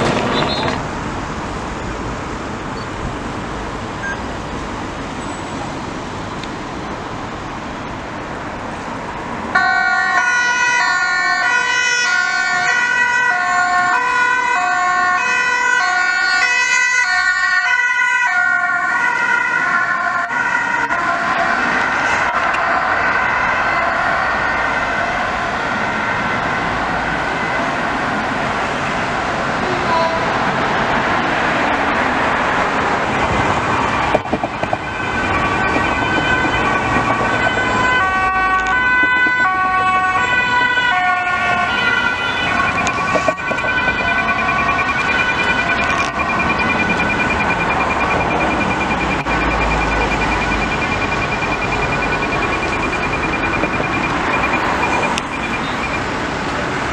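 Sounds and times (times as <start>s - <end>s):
road traffic: 0.0s - 56.9s
two-tone ambulance siren: 9.5s - 29.1s, 33.0s - 56.9s.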